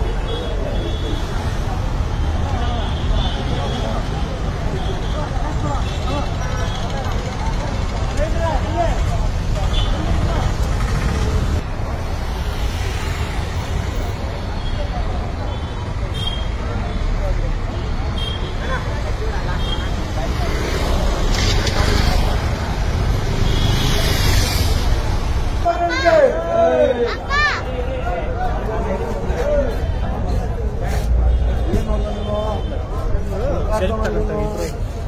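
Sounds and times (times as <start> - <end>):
traffic rumble: 0.0 - 35.0
people talking: 25.7 - 35.0.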